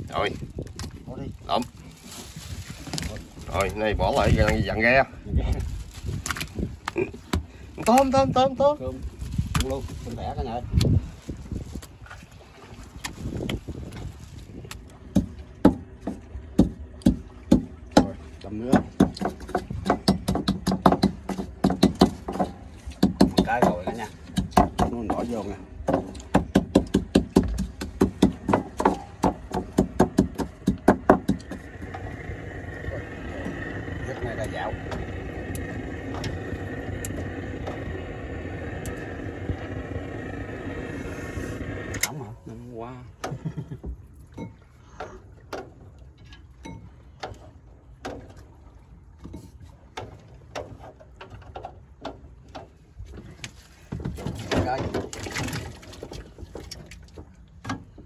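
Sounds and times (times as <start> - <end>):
steady hum: 28.4 - 42.4.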